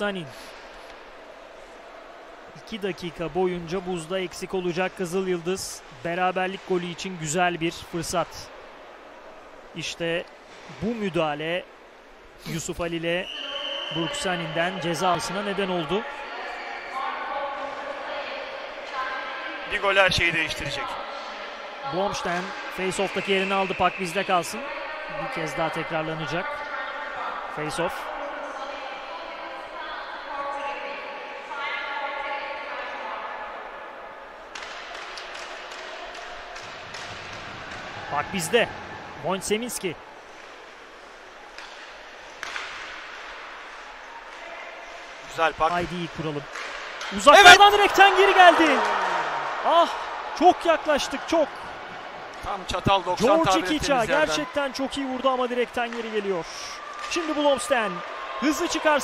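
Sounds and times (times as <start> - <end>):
arena ambience: 0.0 - 59.0
ice hockey rink crowd hiss: 56.2 - 57.1.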